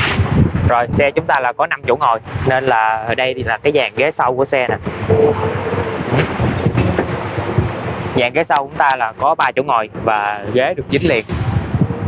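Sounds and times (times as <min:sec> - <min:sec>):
wind buffeting a microphone: 0:00.0 - 0:12.0
low thumps: 0:03.2 - 0:10.1.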